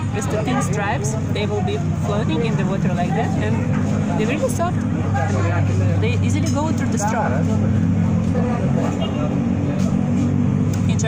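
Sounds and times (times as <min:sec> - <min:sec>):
motor engine humming: 0:00.0 - 0:11.0.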